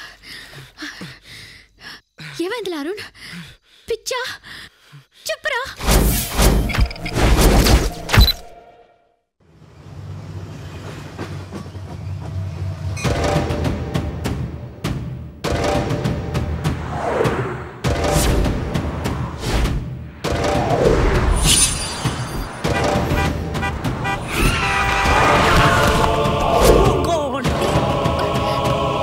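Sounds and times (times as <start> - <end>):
monorail train rumble: 9.5 - 14.2
vehicle horns honking: 22.6 - 26.0
low traffic rumble: 22.6 - 26.5.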